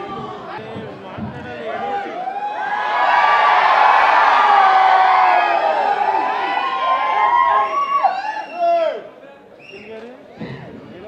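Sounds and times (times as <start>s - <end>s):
crowd cheering and screaming: 1.8s - 9.0s.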